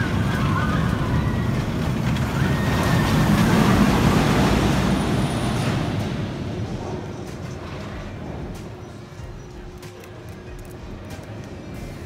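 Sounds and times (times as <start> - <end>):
roller coaster rumbling on track: 0.0 - 12.0.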